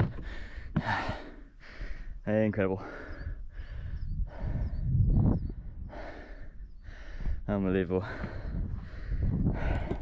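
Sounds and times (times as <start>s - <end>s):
man breathing heavily: 0.0s - 10.0s.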